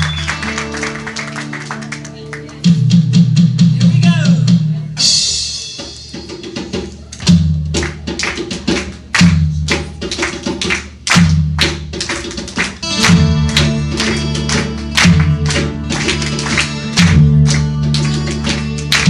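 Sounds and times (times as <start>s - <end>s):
percussion: 0.0s - 19.0s
heavy bass notes: 2.6s - 5.4s, 12.8s - 19.0s
strummed guitar: 12.8s - 19.0s.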